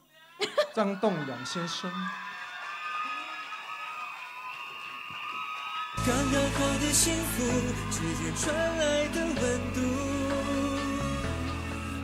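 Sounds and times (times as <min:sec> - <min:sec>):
fans screaming: 0:00.8 - 0:10.7
audience applauding and cheering: 0:00.8 - 0:12.0
music: 0:06.0 - 0:12.0.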